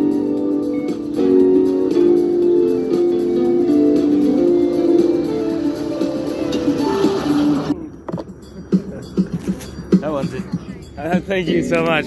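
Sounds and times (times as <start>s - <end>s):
guitar melody: 0.0s - 7.8s, 11.0s - 12.0s.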